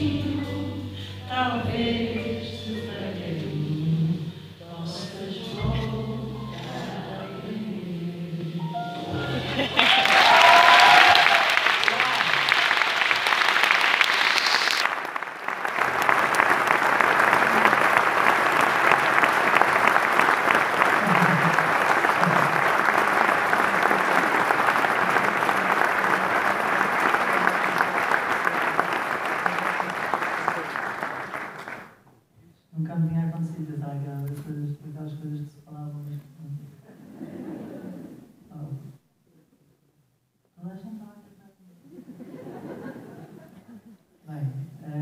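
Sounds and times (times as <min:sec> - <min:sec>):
audience applauding: 0:09.5 - 0:32.0
person cheering: 0:09.6 - 0:13.3.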